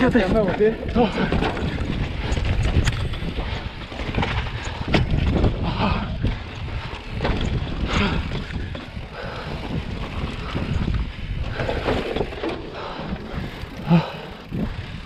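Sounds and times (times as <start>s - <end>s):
wheels knocking on rock ledges: 0.0s - 14.7s
bike tyres rolling over rock: 0.0s - 15.0s
wind buffeting microphone: 0.0s - 15.0s.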